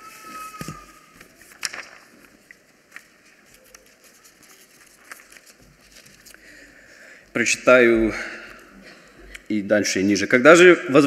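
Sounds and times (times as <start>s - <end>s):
pages rustling: 0.0s - 6.7s.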